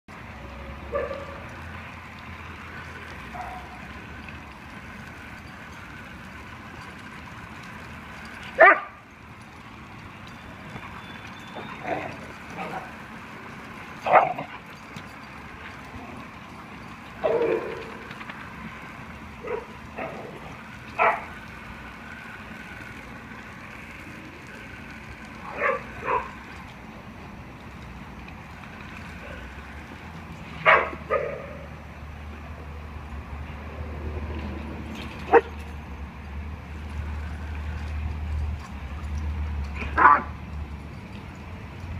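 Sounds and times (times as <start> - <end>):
dog barking: 8.6 - 8.9.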